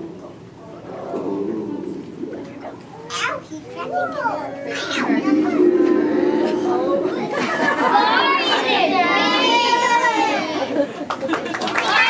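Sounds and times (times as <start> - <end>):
children chattering: 0.6 - 11.0.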